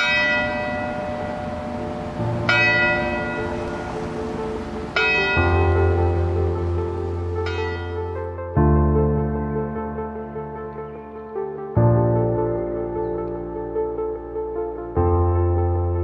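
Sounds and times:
bell-like chime: 0.0s - 1.9s, 2.5s - 4.4s, 5.0s - 6.3s, 7.4s - 8.2s
low sustained chords: 0.0s - 16.0s.

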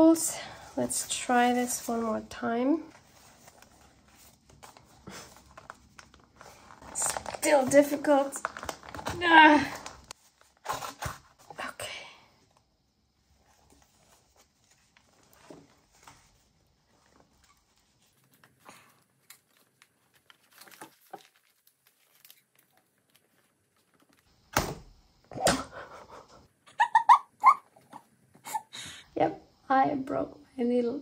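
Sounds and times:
rustling of paper and thread: 0.3s - 11.7s, 12.4s - 24.3s.

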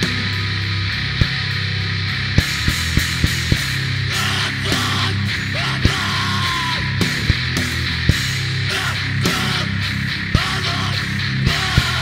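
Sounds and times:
heavy band playing: 0.0s - 12.0s
yelled vocals: 3.4s - 12.0s.

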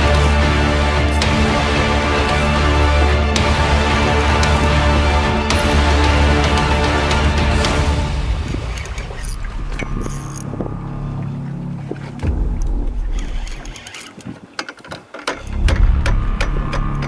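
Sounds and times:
boat low rumble: 0.0s - 13.8s.

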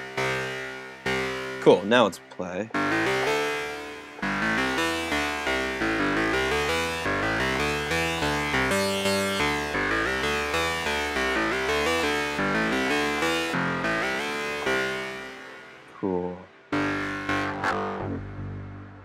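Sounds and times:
synth notes with sharp attack: 2.7s - 19.0s.

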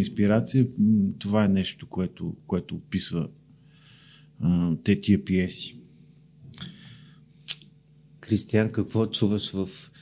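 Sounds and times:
faint steady hum: 0.0s - 10.0s
sharp mouth click: 7.5s - 7.7s.

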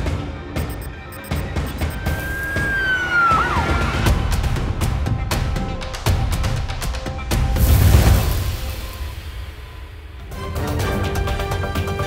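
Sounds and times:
drum-backed music: 0.0s - 12.0s.

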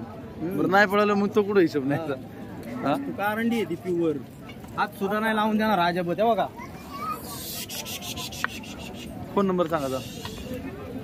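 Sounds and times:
scratchy rubbing noise: 7.2s - 9.2s.

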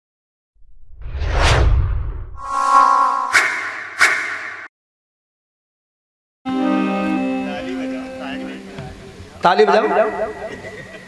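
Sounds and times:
whoosh: 0.6s - 4.7s.

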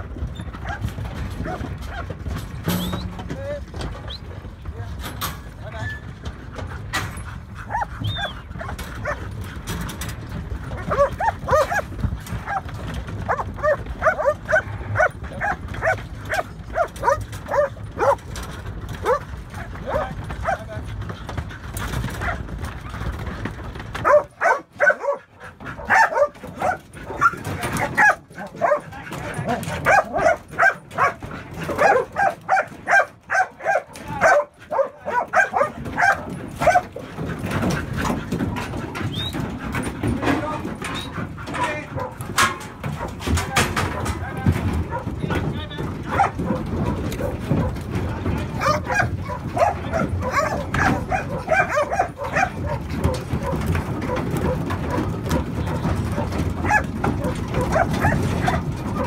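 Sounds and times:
dog barking: 7.7s - 9.2s, 10.9s - 12.6s, 13.3s - 18.2s, 24.0s - 29.0s, 29.7s - 36.9s, 42.0s - 42.2s, 43.8s - 45.2s, 46.1s - 47.8s, 48.6s - 59.0s.

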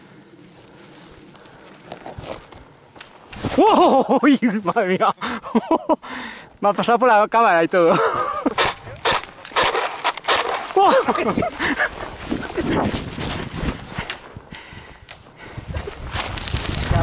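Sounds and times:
footsteps through dry grass: 0.0s - 3.7s, 7.8s - 14.5s, 15.3s - 17.0s.

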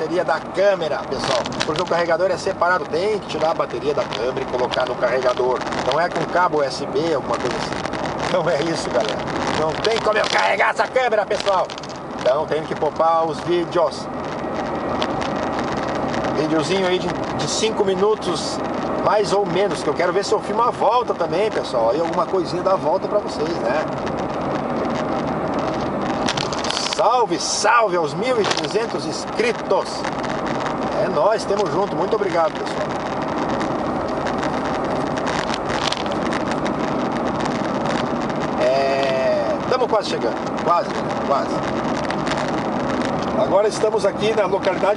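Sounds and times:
car road noise from inside: 0.0s - 44.9s
engine hum: 0.0s - 44.9s
wind: 0.0s - 44.9s.

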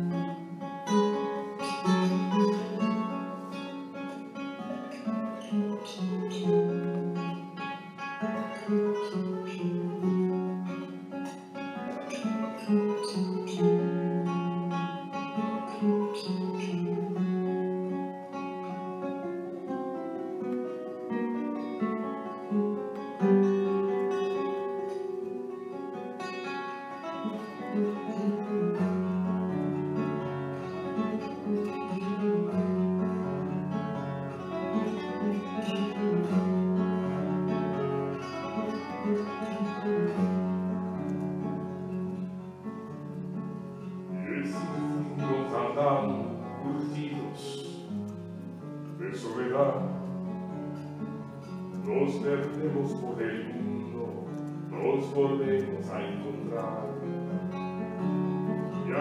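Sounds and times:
fingerstyle classical guitar: 0.0s - 59.0s.

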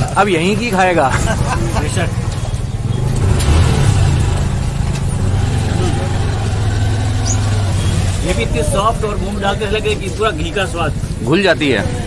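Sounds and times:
motor vehicle engine rumbling: 0.0s - 12.0s
faint voices: 4.3s - 12.0s.

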